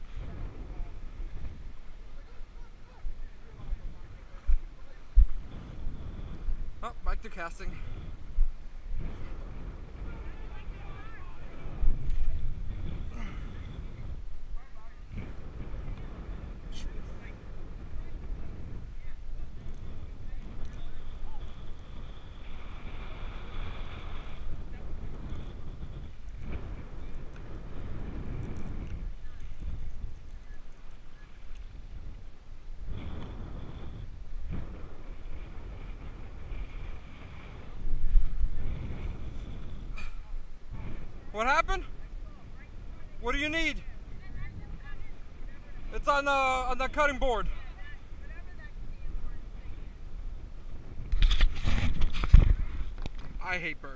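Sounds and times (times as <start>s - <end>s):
wind rumbling on microphone: 0.0s - 53.9s.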